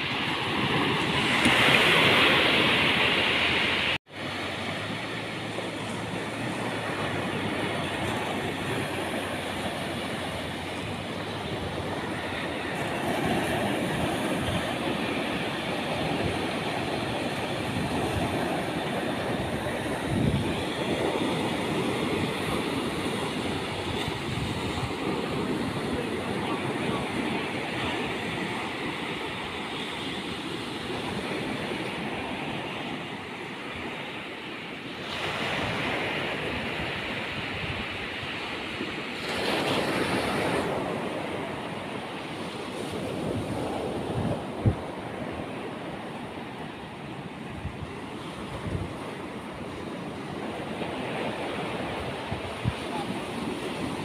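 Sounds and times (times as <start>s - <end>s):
wind buffeting microphone: 0.0s - 34.1s, 35.0s - 54.0s
small waves breaking on sand: 0.0s - 54.0s.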